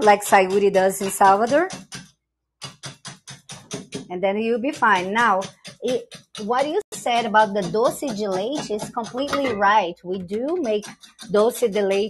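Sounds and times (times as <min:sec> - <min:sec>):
whisk clicking against bowl: 0:00.0 - 0:09.4, 0:10.2 - 0:12.0.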